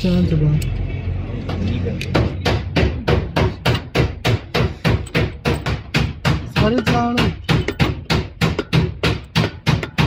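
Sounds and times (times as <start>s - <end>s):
sharp knocks: 2.1s - 10.0s.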